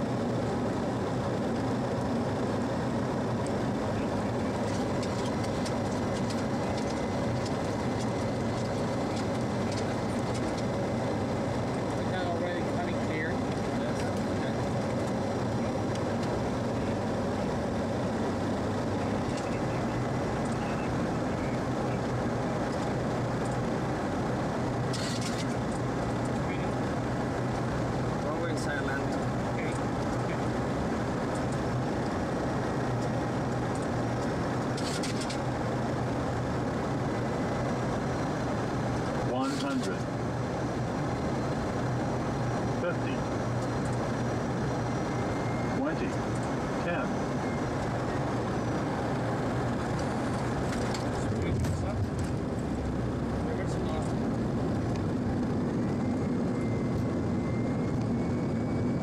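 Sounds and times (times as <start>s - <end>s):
airflow and engine drone: 0.0s - 59.0s.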